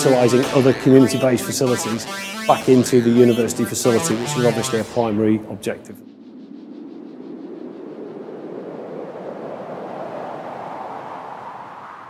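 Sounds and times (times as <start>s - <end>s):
rushing transition whoosh: 6.0s - 12.0s.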